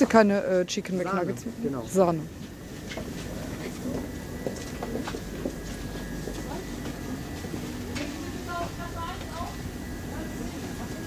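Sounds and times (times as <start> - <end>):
distant voices: 0.0 - 11.0
steady low hum: 0.0 - 11.0.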